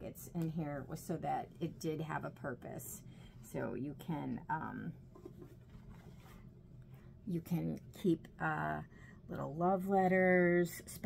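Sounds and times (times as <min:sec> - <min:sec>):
faint rustling of cloth pages: 0:05.1 - 0:06.6.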